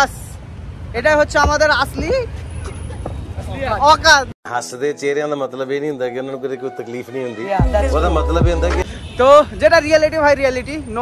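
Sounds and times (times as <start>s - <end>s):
street traffic rumble: 0.0s - 4.4s, 6.8s - 11.0s
men's voices: 3.4s - 10.2s.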